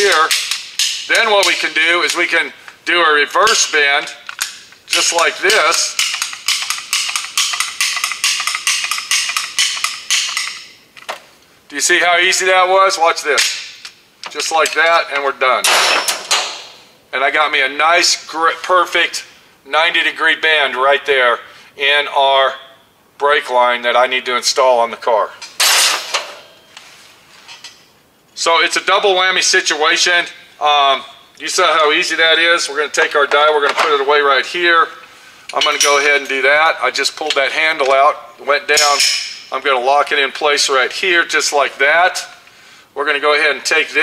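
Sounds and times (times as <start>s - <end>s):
metal tool clinking: 0.0s - 2.2s, 3.4s - 11.2s, 15.6s - 16.7s, 25.4s - 26.8s, 27.4s - 27.9s, 35.5s - 36.4s, 38.8s - 39.5s
ratcheting tube bender clicking: 4.2s - 11.2s
metallic ring: 5.9s - 10.8s, 38.8s - 39.5s.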